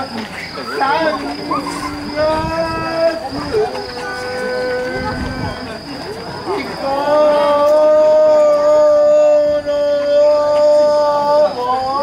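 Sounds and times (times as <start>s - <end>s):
young voices singing long note: 0.7s - 12.0s.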